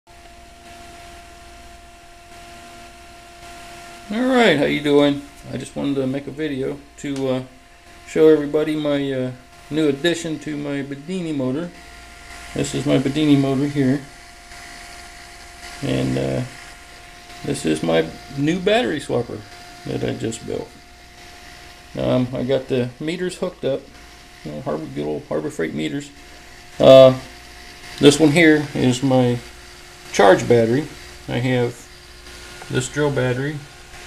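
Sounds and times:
faint hiss: 0.1 - 34.0
low fast buzz: 0.1 - 34.0
motor humming: 0.1 - 34.0.

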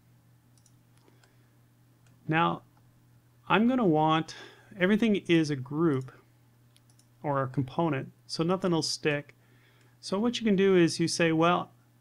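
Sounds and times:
low electrical hum: 0.0 - 12.0
faint computer mouse clicks: 0.6 - 1.4, 6.7 - 7.1.

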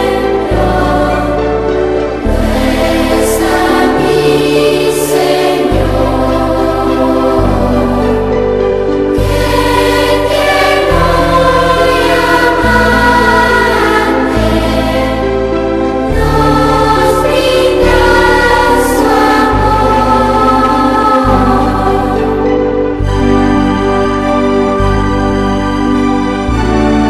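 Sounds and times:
choir singing sacred music: 0.0 - 27.0.

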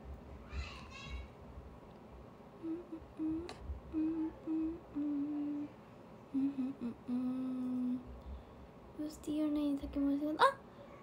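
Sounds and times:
woman humming: 2.6 - 8.1.

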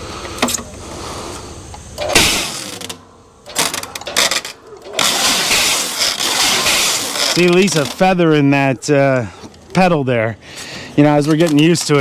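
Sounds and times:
wrap ring turning: 2.0 - 8.2
stretch film rustling: 2.4 - 8.2.

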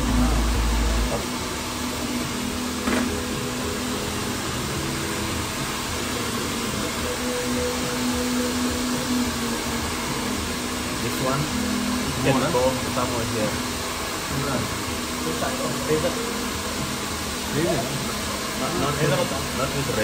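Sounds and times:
low rumble: 0.0 - 1.3.

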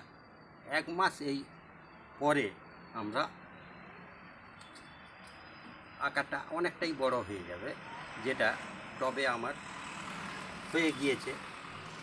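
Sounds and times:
steady background noise: 0.0 - 12.0
man speaking: 10.7 - 11.4.

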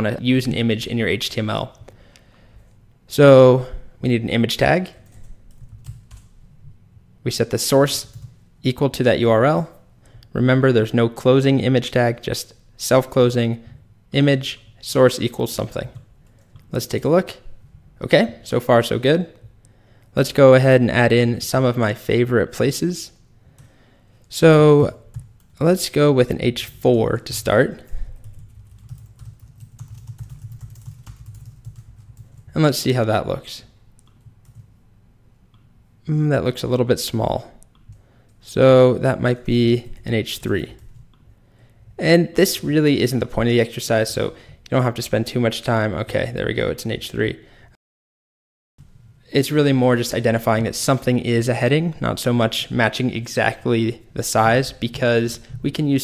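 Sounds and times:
low steady hum: 0.0 - 47.7
computer keyboard typing: 5.0 - 6.3, 8.0 - 8.4, 24.8 - 25.6, 28.2 - 32.5, 34.0 - 34.7.

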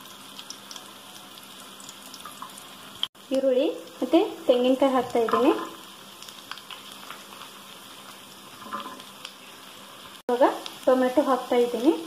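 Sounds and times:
onions sizzling in oil: 0.0 - 12.0.

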